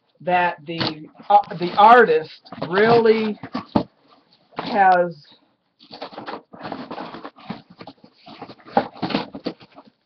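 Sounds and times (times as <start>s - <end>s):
cardboard box tearing: 5.8s - 10.0s.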